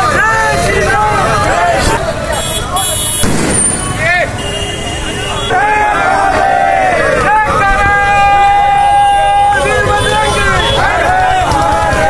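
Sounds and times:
crowd voices: 0.0s - 12.0s
passing road traffic: 0.0s - 12.0s.

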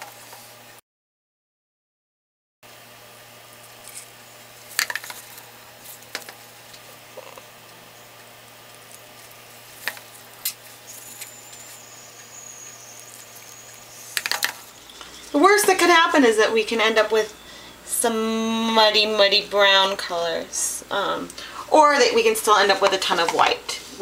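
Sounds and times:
thin high whine: 3.0s - 20.4s
water crackling and sizzling: 8.3s - 15.4s.

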